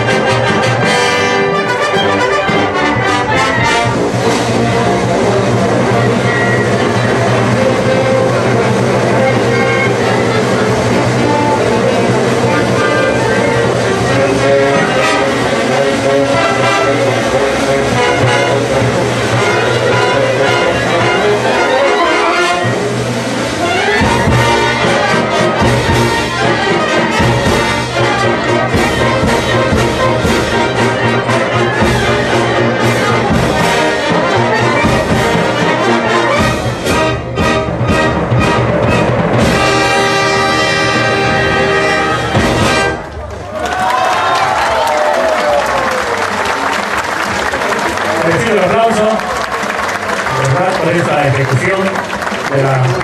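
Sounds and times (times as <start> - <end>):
brass band playing: 0.0 - 53.0.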